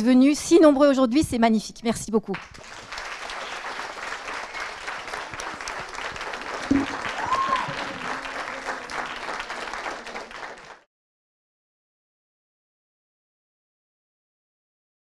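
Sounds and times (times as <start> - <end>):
audience applause: 2.4 - 10.9.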